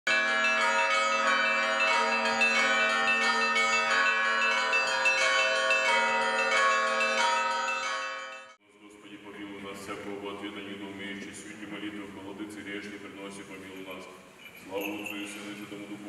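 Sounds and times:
church bells ringing a peal: 0:00.1 - 0:08.6.

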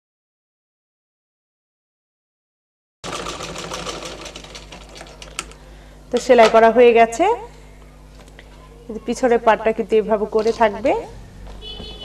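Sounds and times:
sewing machine stitching: 0:03.0 - 0:05.6.

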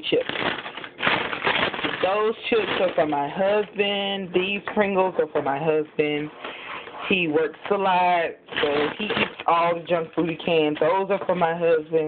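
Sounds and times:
plastic chip bag crinkling: 0:00.0 - 0:05.1, 0:06.4 - 0:11.5.

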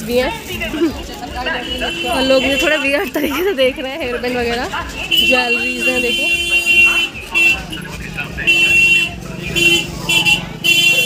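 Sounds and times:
busy background noise: 0:00.0 - 0:11.0.

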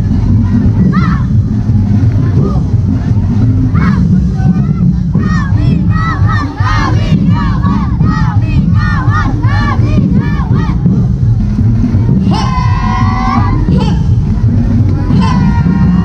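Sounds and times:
loud dense drumming: 0:00.0 - 0:16.0
crowd shouting war cries: 0:03.7 - 0:10.9, 0:12.1 - 0:16.0.

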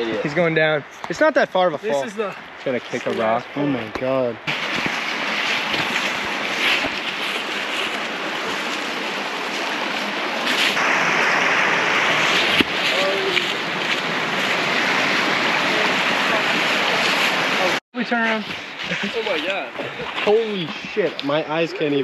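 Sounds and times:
creek water rushing over rocks: 0:04.4 - 0:22.0.

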